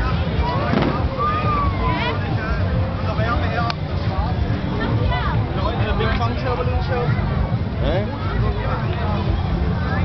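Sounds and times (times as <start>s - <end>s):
crowd voices: 0.0s - 10.0s
low rumble of traffic: 0.0s - 10.0s
sharp crack: 0.6s - 1.3s.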